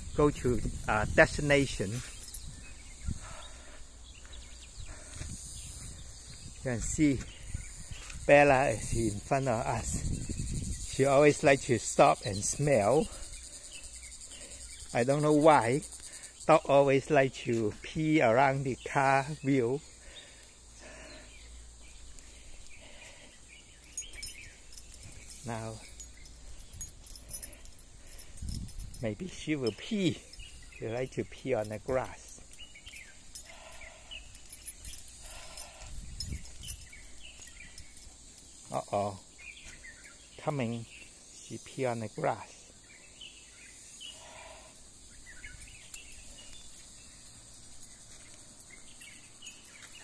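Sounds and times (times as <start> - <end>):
small metal pieces jingling: 0.0 - 3.4, 23.7 - 38.9, 44.8 - 50.0
insects droning: 0.0 - 50.0
bird chirps: 21.0 - 41.2, 45.0 - 50.0.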